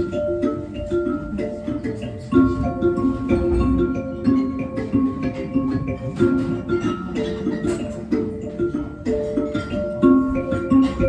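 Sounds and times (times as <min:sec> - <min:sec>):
tuned percussion melody: 0:00.0 - 0:11.0.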